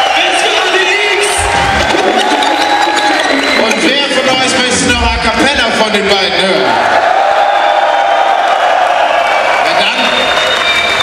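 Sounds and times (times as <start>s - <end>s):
large crowd cheering and shouting: 0.0s - 11.0s.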